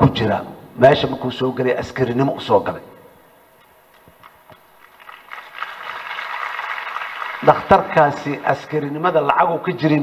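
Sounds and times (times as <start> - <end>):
audience applause: 4.8 - 8.2.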